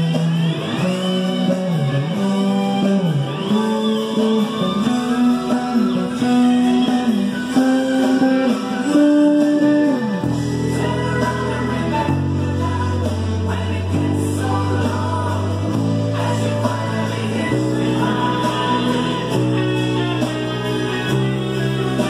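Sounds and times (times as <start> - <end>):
electric bass: 0.0 - 22.0
person singing: 0.0 - 22.0.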